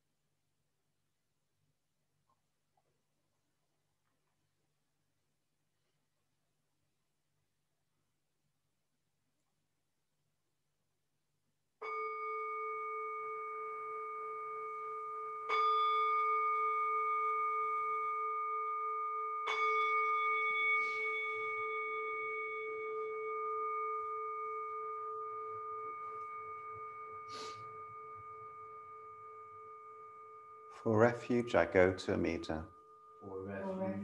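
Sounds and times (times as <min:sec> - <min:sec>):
singing bowl ringing: 0:11.8 - 0:34.0.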